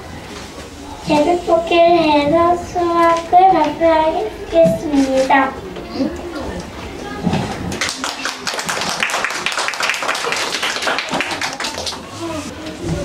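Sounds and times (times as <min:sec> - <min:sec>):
audience applause: 0:07.7 - 0:12.5.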